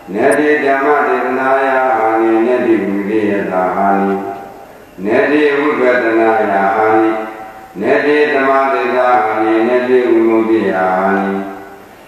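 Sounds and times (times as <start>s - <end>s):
man chanting verses: 0.0s - 11.8s.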